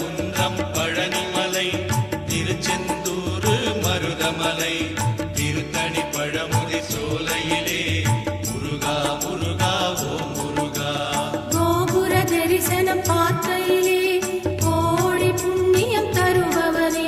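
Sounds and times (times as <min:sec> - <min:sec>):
devotional song music: 0:00.0 - 0:17.0.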